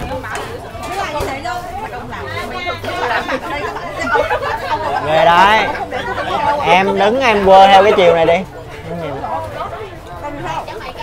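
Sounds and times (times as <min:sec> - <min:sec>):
babble of voices: 0:00.0 - 0:11.0.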